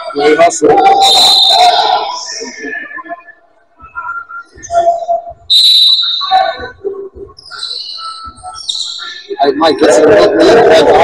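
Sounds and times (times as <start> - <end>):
referee's whistle blast: 1.0 - 2.0, 5.5 - 6.6.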